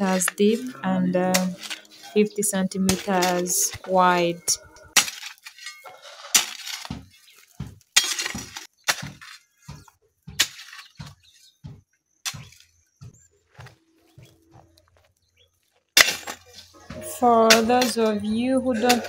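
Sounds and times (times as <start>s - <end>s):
gritty hoe scrape: 0.0s - 11.5s, 14.8s - 19.0s
hoe chopping into soil: 5.0s - 11.4s, 12.2s - 12.8s, 16.0s - 16.6s.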